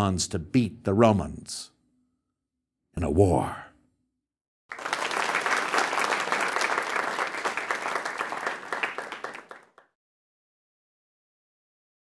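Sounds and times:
audience applause: 4.7 - 9.8.

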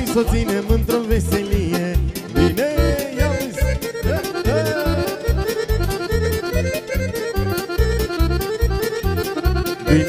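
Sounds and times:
fast folk dance music: 0.0 - 10.0.

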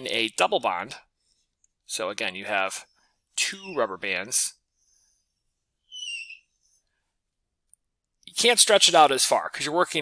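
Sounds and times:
stylus squeaking on screen: 2.7 - 4.3, 5.8 - 6.6.

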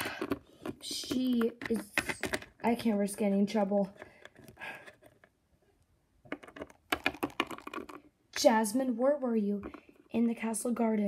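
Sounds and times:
plastic toy clicking on hard floor: 6.3 - 8.0.

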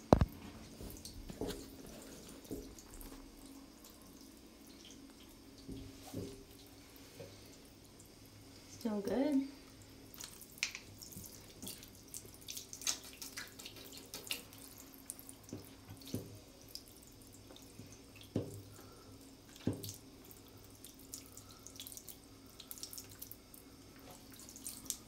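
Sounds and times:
water splashing and dripping: 9.8 - 18.7, 19.5 - 25.0.

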